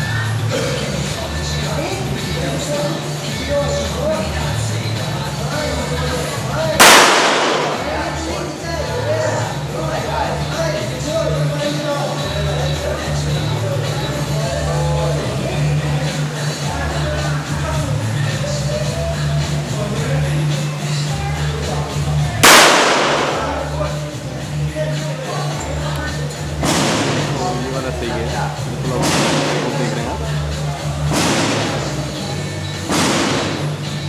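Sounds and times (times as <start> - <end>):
pistol shot: 6.8 - 8.0, 22.4 - 23.7, 26.6 - 27.4, 29.0 - 29.7, 31.1 - 31.9, 32.9 - 33.7.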